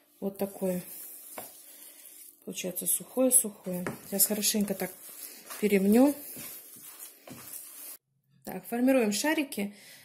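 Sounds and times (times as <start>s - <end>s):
hands kneading grated potato: 0.0s - 8.0s.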